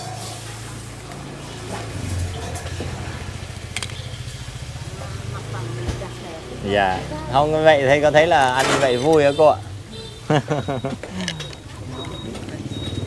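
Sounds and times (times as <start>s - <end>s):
motorbike engine running: 0.4s - 8.1s.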